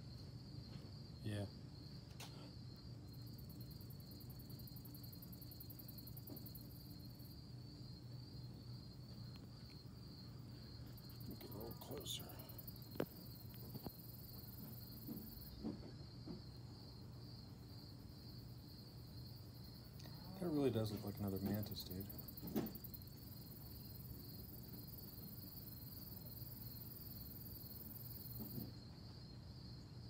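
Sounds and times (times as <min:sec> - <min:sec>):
faint low hum: 0:00.0 - 0:30.0
insects trilling: 0:00.0 - 0:30.0
higher rapid insect pulsing: 0:02.6 - 0:15.6, 0:16.9 - 0:28.8.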